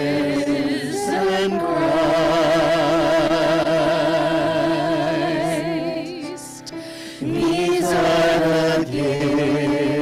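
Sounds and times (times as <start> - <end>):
voices singing slow chant: 0.0 - 10.0.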